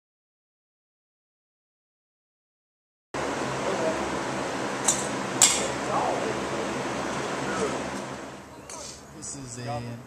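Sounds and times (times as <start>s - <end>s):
steady background noise: 3.2s - 10.0s.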